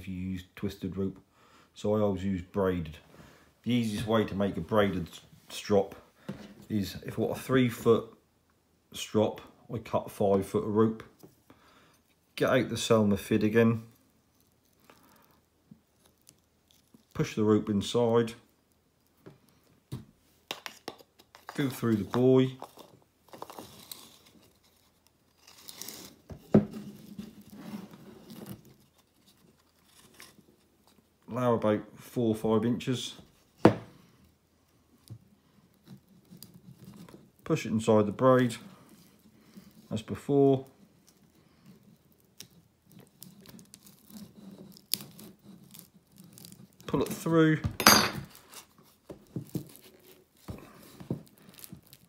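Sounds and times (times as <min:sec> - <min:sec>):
rope rustling and scraping: 0:11.0 - 0:31.5, 0:33.2 - 0:47.6, 0:48.2 - 0:52.0.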